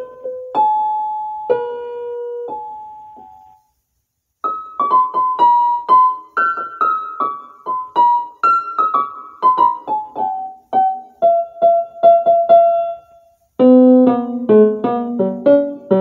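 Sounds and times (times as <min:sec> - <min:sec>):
piano-like keyboard melody: 0:00.0 - 0:03.6, 0:04.4 - 0:16.0.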